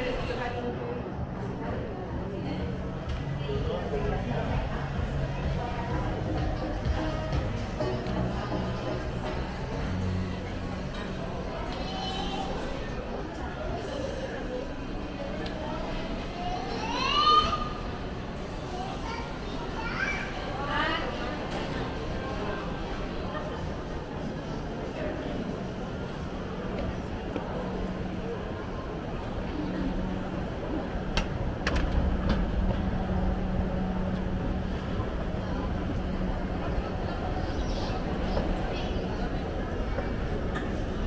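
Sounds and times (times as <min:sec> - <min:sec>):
din of busy indoor space: 0:00.0 - 0:41.0
indistinct voices: 0:00.0 - 0:41.0
child's loud call: 0:16.6 - 0:17.8
escalator humming: 0:25.8 - 0:41.0.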